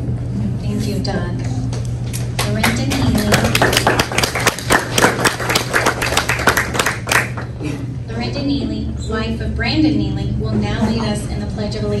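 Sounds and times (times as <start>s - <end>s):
people clapping: 2.1s - 7.7s.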